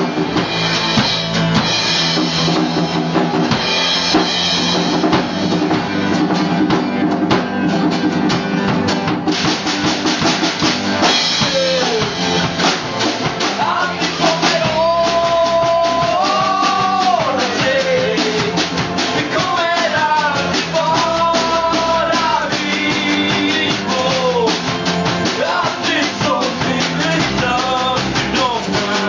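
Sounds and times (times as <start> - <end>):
drums beat: 0.0 - 29.0
rock band playing live: 0.0 - 29.0
strummed acoustic guitars: 0.0 - 29.0
man singing long notes: 11.3 - 12.4, 13.5 - 24.7, 25.4 - 29.0.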